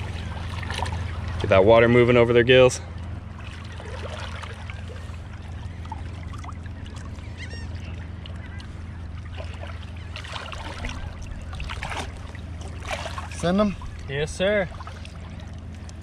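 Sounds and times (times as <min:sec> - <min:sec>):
seawater sloshing: 0:00.0 - 0:16.0
steady low hum: 0:00.0 - 0:16.0
water splashes: 0:00.0 - 0:16.0
bird call: 0:04.7 - 0:11.8.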